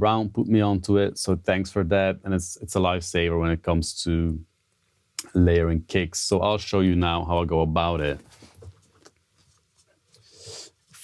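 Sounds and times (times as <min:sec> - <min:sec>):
soft breath inhale: 0:10.2 - 0:11.0.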